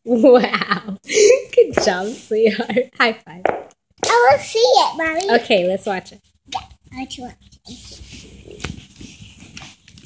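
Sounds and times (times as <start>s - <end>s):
fabric rubbing on microphone: 7.7s - 10.0s.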